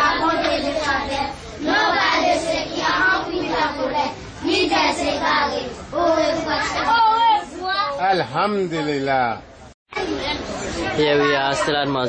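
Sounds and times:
children singing together: 0.0 - 7.6.

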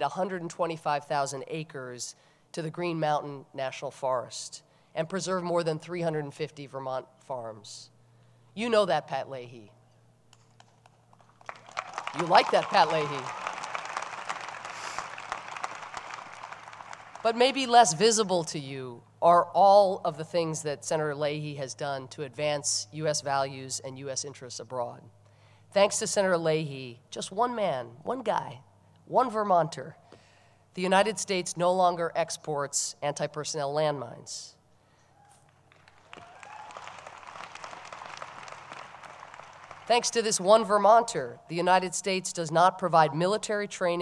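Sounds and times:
audience applauding: 11.2 - 18.0, 35.7 - 40.2.

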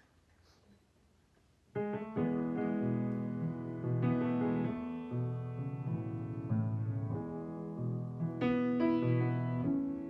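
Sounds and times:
piano chords: 1.7 - 10.0.

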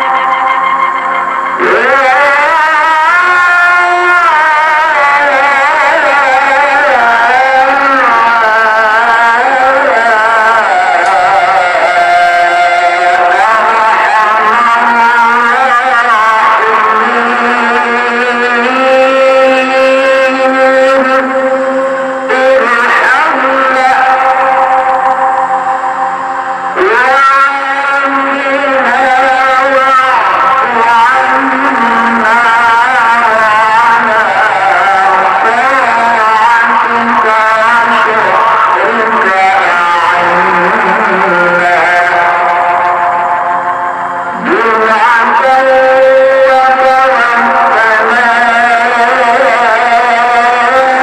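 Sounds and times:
solo voice chanting: 0.0 - 51.0.

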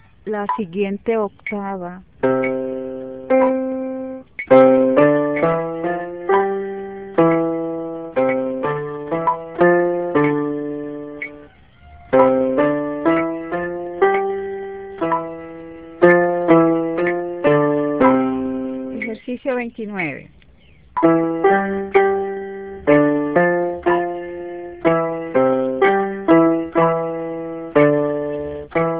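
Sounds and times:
electronic keyboard piano notes: 0.0 - 28.9.

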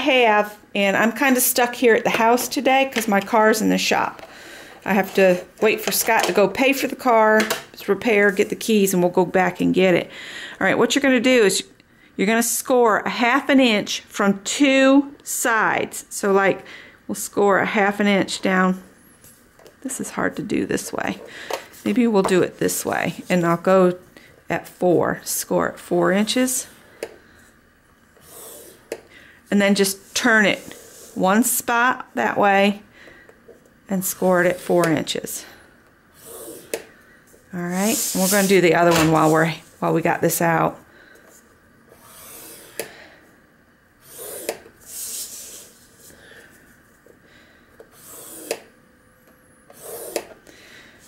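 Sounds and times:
stylus scraping cardstock: 28.2 - 29.0, 36.2 - 36.9, 37.7 - 39.7, 41.9 - 42.9, 44.0 - 46.1, 47.8 - 48.7, 49.7 - 50.4.

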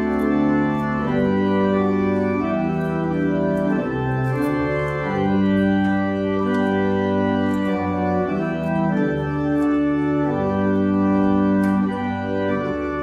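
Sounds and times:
pipe organ playing chords: 0.0 - 13.0.

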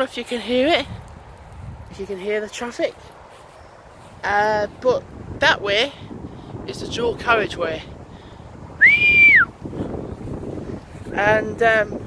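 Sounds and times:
distant traffic hum: 0.0 - 11.1
wind on microphone: 0.0 - 12.0
man whistling: 8.8 - 9.5.

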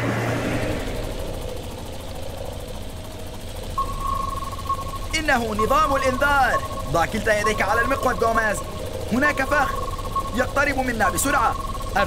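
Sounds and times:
cartoon engine rumbling: 0.1 - 12.0
electronic alarm high tone: 3.8 - 12.0.

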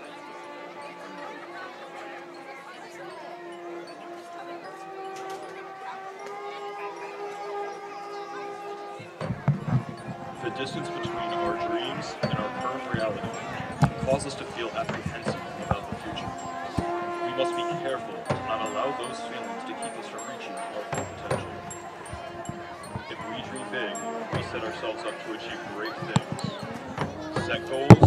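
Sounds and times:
marching band playing: 9.2 - 28.0.

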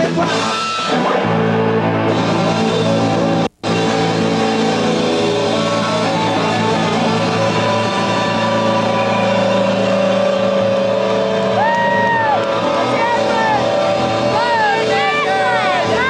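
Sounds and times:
electric guitar drone: 0.3 - 16.0
women squealing: 6.0 - 13.8.

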